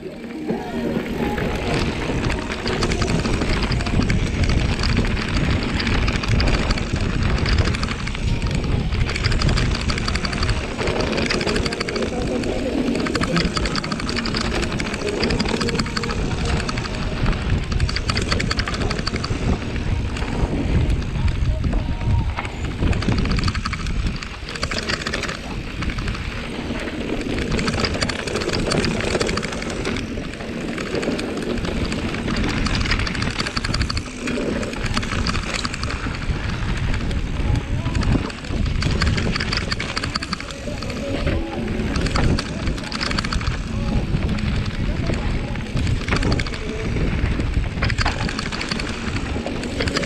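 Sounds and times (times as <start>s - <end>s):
bike rattling over ground: 0.0s - 50.0s
tyres rolling over dirt: 0.0s - 50.0s
wind buffeting microphone: 0.0s - 50.0s.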